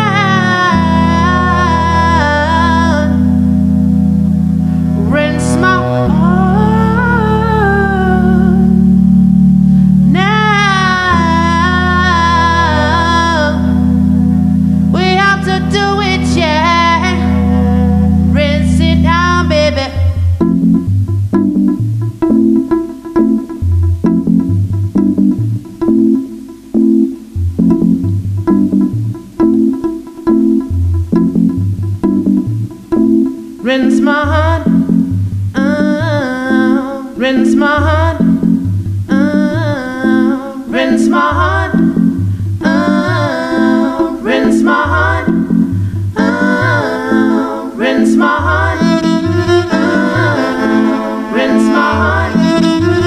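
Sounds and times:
low cello drone: 0.0 - 21.6, 33.6 - 53.0
sliding melodic note: 0.0 - 53.0.

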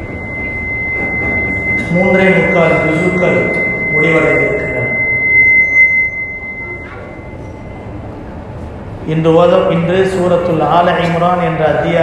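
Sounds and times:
steady high-pitched tone: 0.0 - 10.4.

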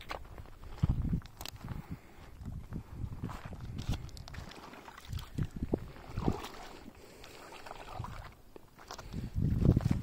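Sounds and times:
footsteps sloshing through shallow water: 0.0 - 10.0.

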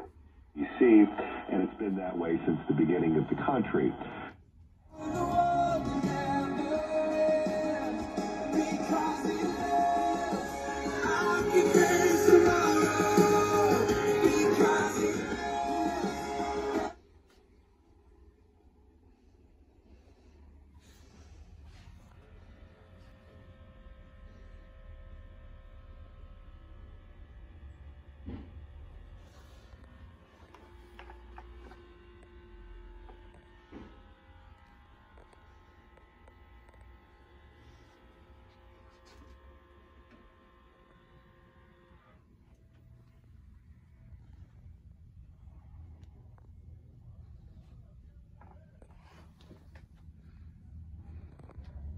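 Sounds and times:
steady low hum: 0.0 - 51.9
music with singing on car radio: 4.9 - 17.1.

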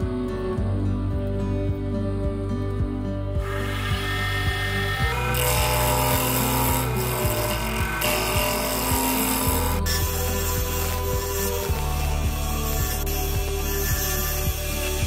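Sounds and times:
background music: 0.0 - 15.0
chisel cutting wood hiss: 3.4 - 15.0
wood lathe spinning: 3.4 - 15.0.

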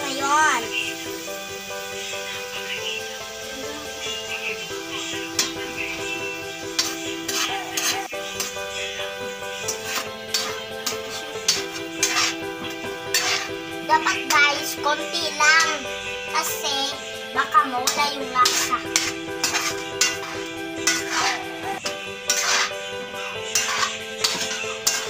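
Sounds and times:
background music with held tones: 0.0 - 25.0
metal spoon scraping a wok: 1.8 - 16.6, 17.8 - 25.0.

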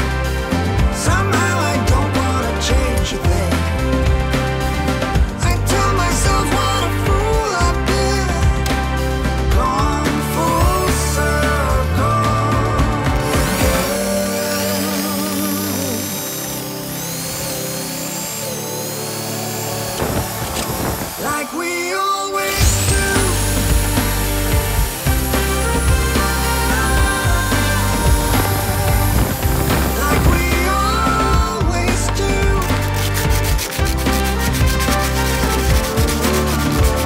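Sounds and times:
background music: 0.0 - 37.0
electric drill boring into wood: 0.0 - 37.0
sandpaper scratching wood: 13.2 - 21.7, 22.4 - 37.0.

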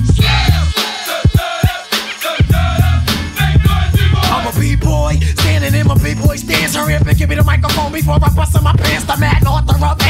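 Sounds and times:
heavy repeating bass line: 0.0 - 1.8, 2.4 - 10.0
rapping over a drum beat: 0.0 - 10.0.

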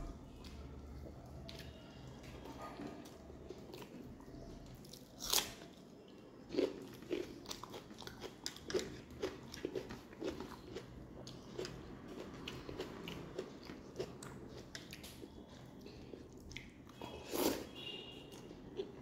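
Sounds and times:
crunchy chewing: 0.3 - 19.0.

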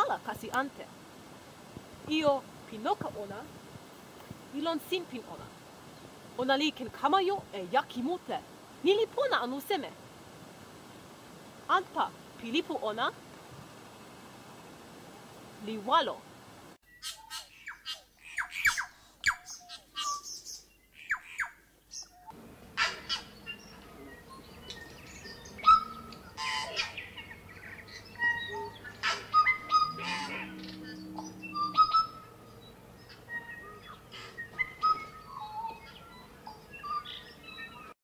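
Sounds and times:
birds chirping and trilling: 16.8 - 38.0
faint low hum: 22.3 - 37.9.

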